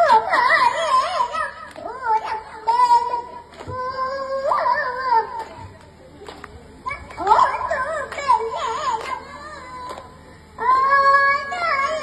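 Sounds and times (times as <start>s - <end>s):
toddler singing into microphone: 0.0s - 5.7s, 6.9s - 12.0s.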